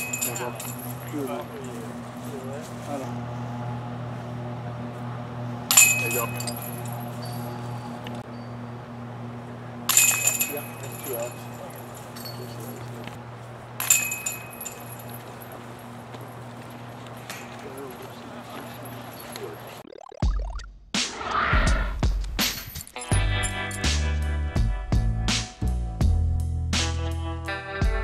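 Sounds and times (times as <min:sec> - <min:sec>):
discs clanking on metal chains: 0:00.0 - 0:02.6, 0:05.7 - 0:08.6, 0:09.9 - 0:13.2, 0:13.8 - 0:19.8
steady low hum: 0:00.0 - 0:19.8
music: 0:20.7 - 0:28.0
loud swoosh: 0:21.0 - 0:22.2.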